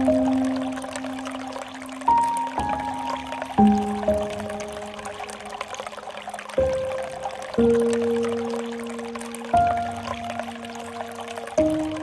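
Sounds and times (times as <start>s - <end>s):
soft background music: 0.0s - 12.0s
water pouring into pool: 0.0s - 12.0s.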